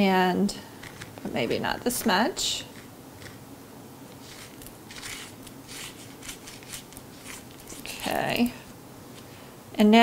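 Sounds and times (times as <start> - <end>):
paintbrush brushing strokes: 4.2 - 8.0.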